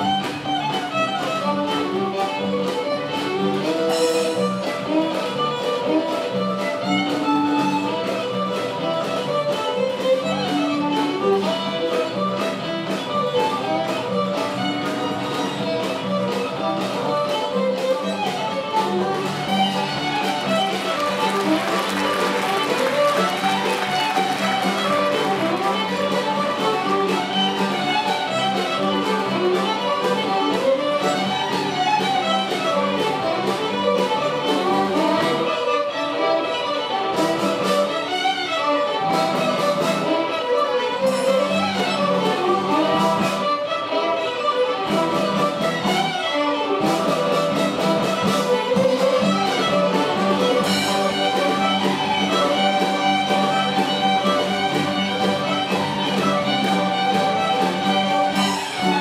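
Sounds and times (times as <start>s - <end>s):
cello: 0.0s - 59.0s
fiddle ensemble playing a tune: 0.0s - 59.0s.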